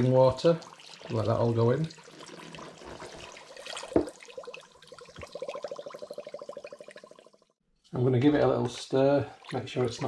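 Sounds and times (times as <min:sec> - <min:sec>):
water pouring into a saucepan: 0:00.0 - 0:07.4
bottle gurgling: 0:00.0 - 0:07.6.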